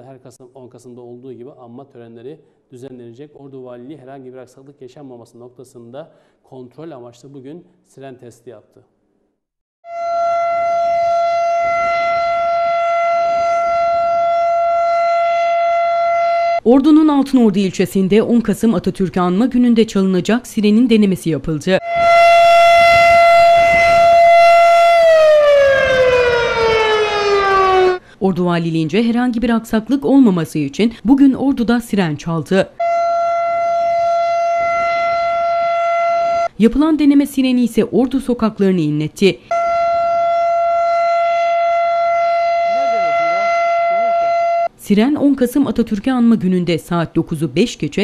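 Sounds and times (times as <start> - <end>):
steady siren tone: 9.8 - 16.7, 21.8 - 28.0, 32.8 - 36.6, 39.5 - 44.8.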